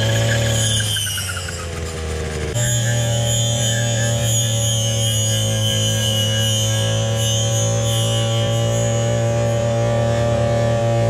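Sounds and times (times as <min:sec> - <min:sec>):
brush cutter engine running: 0:00.0 - 0:11.0.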